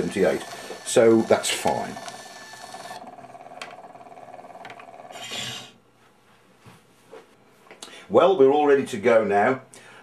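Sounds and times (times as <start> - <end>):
needle scraping off disc: 0.0 - 3.0, 4.8 - 5.8.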